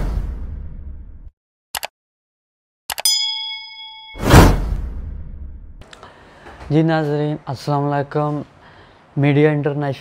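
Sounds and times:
notification bell ding: 3.0s - 4.6s.

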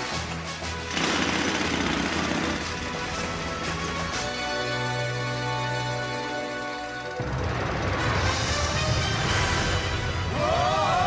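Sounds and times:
background music: 0.0s - 11.0s
power drill machinery: 0.1s - 4.2s.

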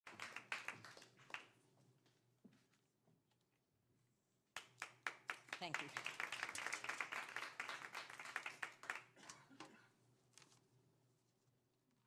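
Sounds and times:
scattered audience handclaps: 0.0s - 1.6s, 4.6s - 9.5s.

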